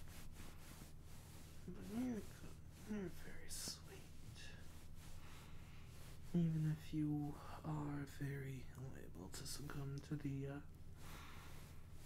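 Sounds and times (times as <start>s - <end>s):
man speaking softly: 1.6s - 4.7s, 6.3s - 10.7s.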